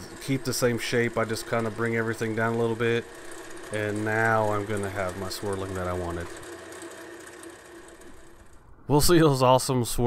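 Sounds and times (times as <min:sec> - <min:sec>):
wood lathe cutting: 0:00.0 - 0:08.6.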